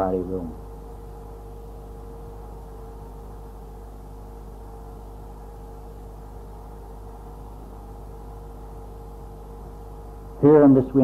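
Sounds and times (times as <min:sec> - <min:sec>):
electrical hum and hiss: 0:00.0 - 0:11.0.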